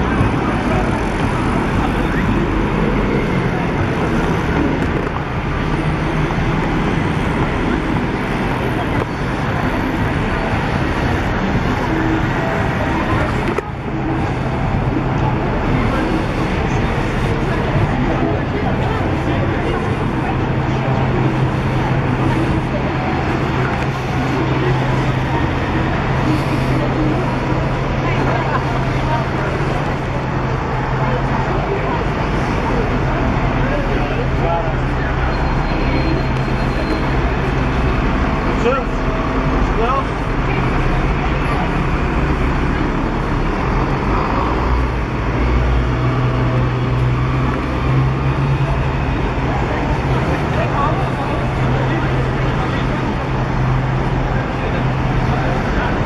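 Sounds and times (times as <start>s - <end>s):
buses and cars driving: 0.0s - 56.0s
passers-by voices: 0.0s - 56.0s.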